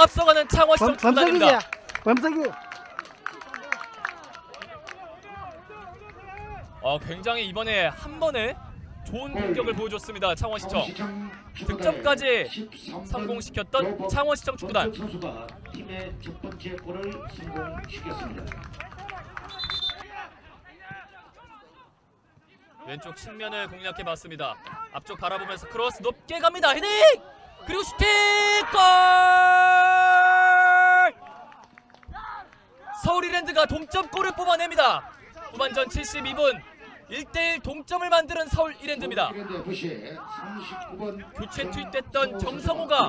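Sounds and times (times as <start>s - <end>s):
commentary: 0.0s - 30.2s, 32.1s - 43.0s
voices calling and shouting: 3.5s - 31.4s, 32.1s - 43.0s.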